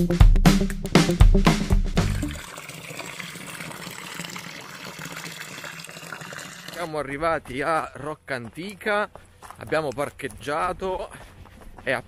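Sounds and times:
music: 0.0 - 2.4.

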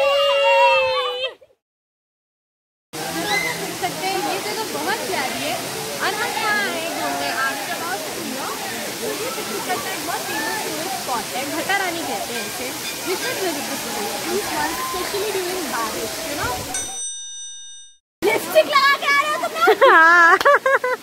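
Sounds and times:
waterfall rushing: 3.0 - 16.8, 18.2 - 20.2
chatter of voices: 3.0 - 17.0.

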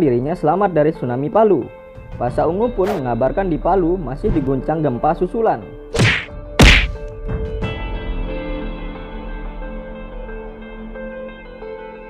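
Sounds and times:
background music: 0.0 - 12.0
sharp percussive hits: 6.0 - 7.1.

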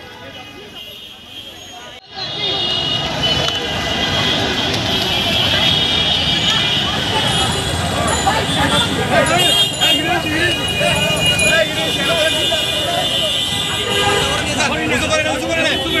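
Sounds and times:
street traffic: 0.0 - 16.0
crowd shouting: 1.6 - 16.0.

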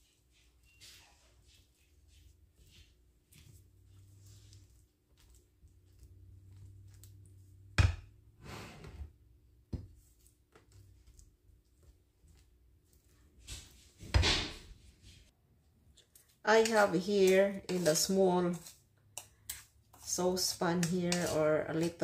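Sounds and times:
spatula scraping batter: 0.0 - 7.8, 9.7 - 14.3, 16.0 - 22.0.

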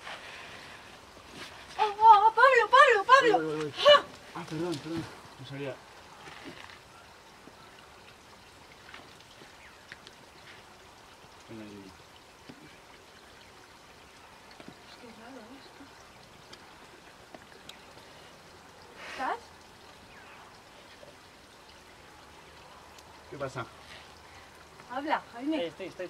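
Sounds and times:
small stream running: 0.0 - 26.0.

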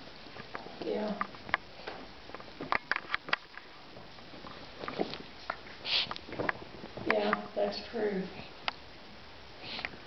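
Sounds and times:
dog sniffing: 5.7 - 6.2.

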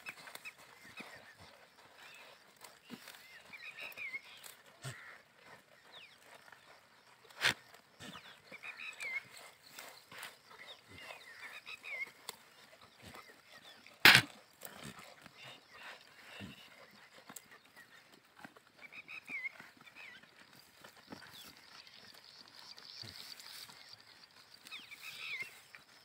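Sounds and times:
goats chewing grass: 0.0 - 26.0.

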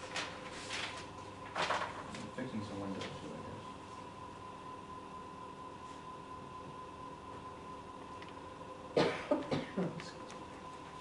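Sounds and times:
faint steady hum: 0.0 - 11.0
woman coughing: 9.0 - 10.0.

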